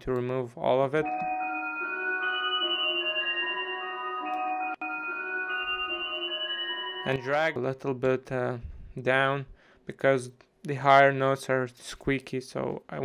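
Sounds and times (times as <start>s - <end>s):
thin bright synth melody: 1.0s - 7.6s.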